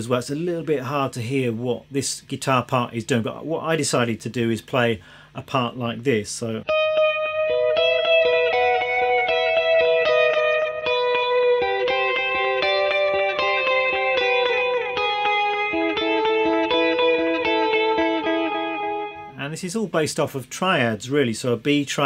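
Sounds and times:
electric guitar with delay echoes: 0:06.7 - 0:19.4.

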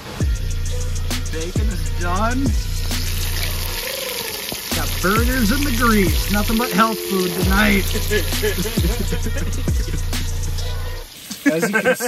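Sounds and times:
deep sliding bass: 0:00.0 - 0:03.8, 0:04.7 - 0:06.6, 0:07.4 - 0:11.0
wavering melodic line: 0:04.7 - 0:11.1.

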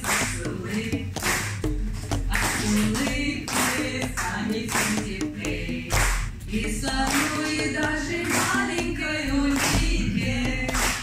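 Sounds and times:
voices singing together: 0:00.0 - 0:01.7, 0:02.3 - 0:11.0
hands clapping a steady beat: 0:00.0 - 0:11.0.

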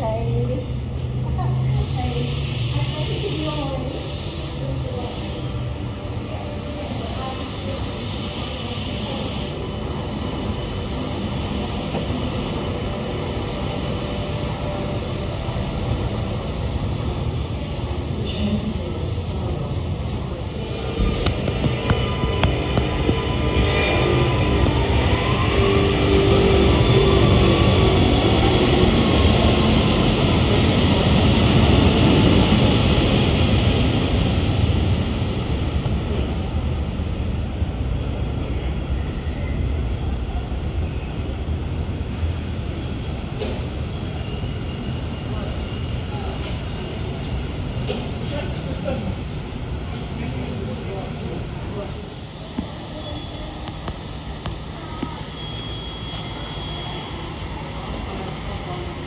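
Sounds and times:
train wheels rumbling: 0:00.0 - 0:59.0
train motor whine: 0:52.0 - 0:59.0.

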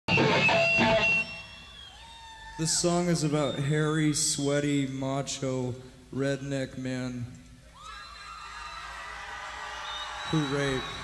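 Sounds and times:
electric guitar strumming chords: 0:00.1 - 0:01.4.

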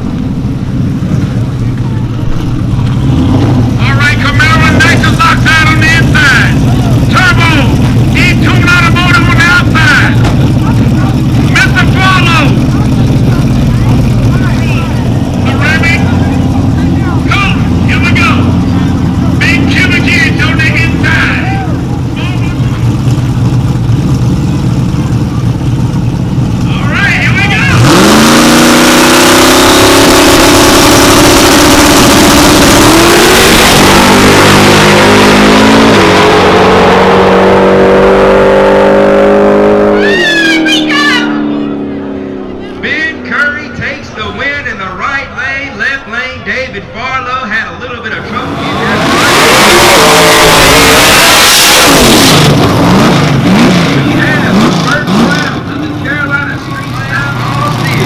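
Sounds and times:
drag car engine: 0:00.0 - 0:58.0
voices: 0:01.1 - 0:23.6, 0:24.3 - 0:28.0, 0:39.9 - 0:49.7, 0:53.9 - 0:58.0.

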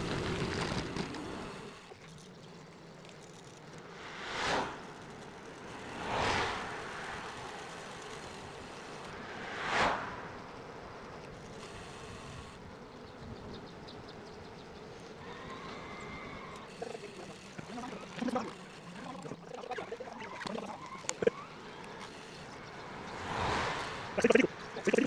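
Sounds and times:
road and wind noise from bike: 0:00.0 - 0:25.0.

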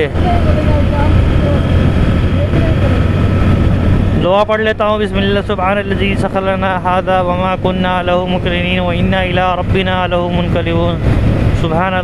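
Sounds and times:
motorcycle engine running: 0:00.0 - 0:12.0
road and wind noise: 0:00.0 - 0:12.0.

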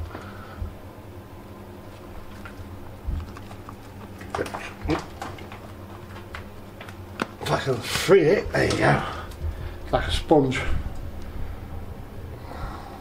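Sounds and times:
scraping and crumbling wood: 0:02.2 - 0:08.0.

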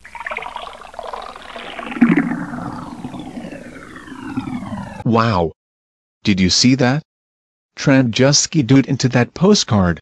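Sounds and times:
cartoon swirling sound effect: 0:00.0 - 0:05.1.

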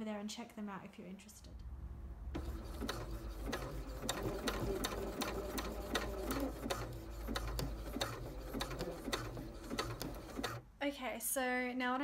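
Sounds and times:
sewing machine motor hum: 0:02.3 - 0:10.6
sewing machine needle clicks: 0:02.8 - 0:10.6.

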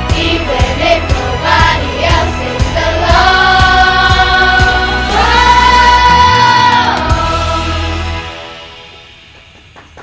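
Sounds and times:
steady drum beat: 0:00.0 - 0:07.8
backing music: 0:00.0 - 0:10.0
children singing: 0:00.1 - 0:08.0.

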